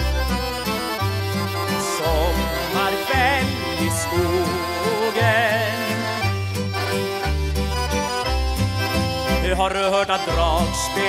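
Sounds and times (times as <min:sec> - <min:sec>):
accordion dance tune: 0:00.0 - 0:11.0
stepping bass line: 0:00.0 - 0:11.0.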